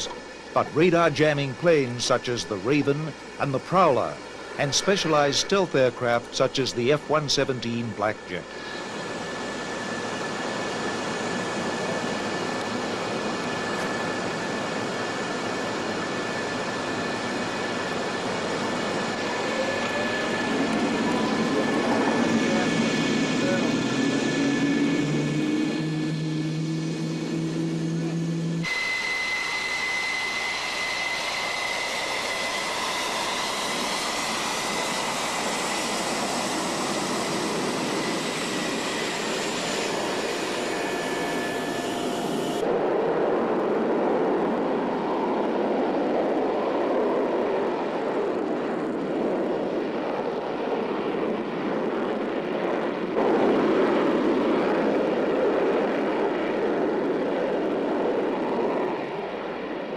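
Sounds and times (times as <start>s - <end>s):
deep jet engine noise: 0.0s - 59.9s
jet engine whine: 0.0s - 59.9s.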